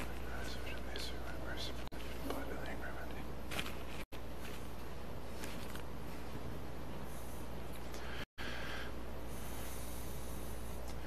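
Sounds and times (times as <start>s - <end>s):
low electrical hum: 0.0s - 11.0s
faint whispered speech: 0.2s - 3.3s.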